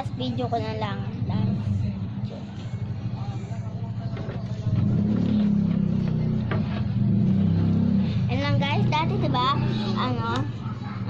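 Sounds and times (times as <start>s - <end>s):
motor vehicle engine running: 0.0s - 11.0s.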